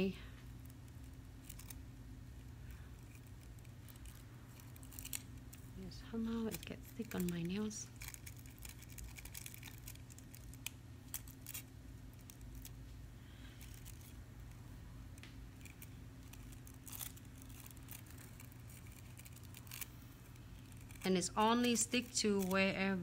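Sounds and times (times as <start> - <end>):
low steady hum: 0.0 - 23.0
foil rustling: 2.6 - 14.6, 15.5 - 23.0.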